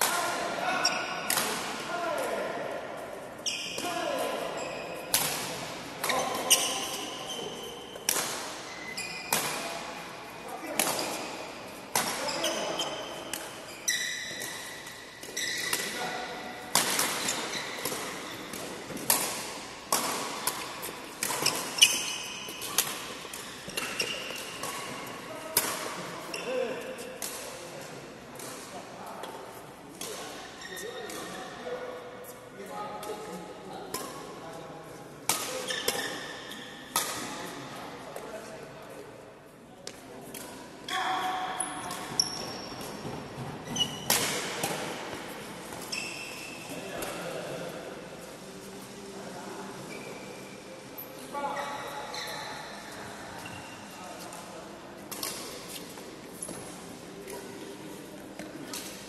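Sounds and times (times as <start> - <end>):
rackets hitting shuttlecock: 0.0 - 2.5, 5.0 - 10.0, 10.7 - 13.6, 14.2 - 26.1, 35.3 - 37.5, 41.6 - 47.2, 55.0 - 57.6.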